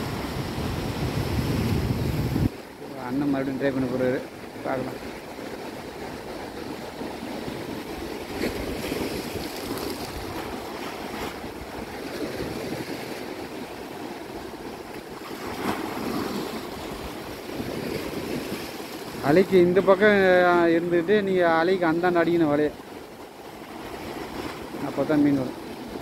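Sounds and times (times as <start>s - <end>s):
ocean surf breaking: 0.0s - 26.0s.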